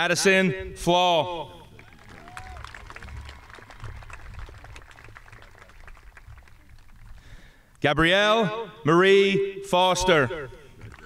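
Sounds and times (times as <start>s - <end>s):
audience clapping: 1.7s - 7.8s, 10.8s - 11.0s.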